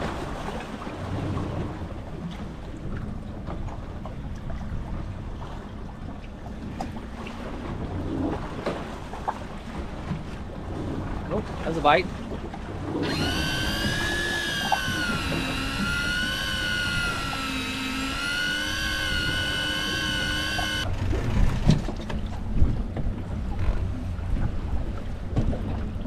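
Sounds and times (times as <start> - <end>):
water noise: 0.0 - 26.0
wind: 0.0 - 26.0
fishing reel motor whine: 13.0 - 21.6.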